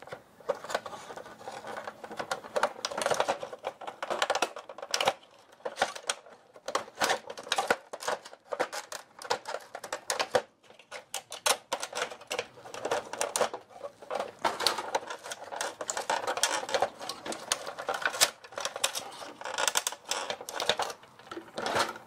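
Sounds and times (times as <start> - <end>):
plastic parts clicking and rattling: 0.0 - 22.0.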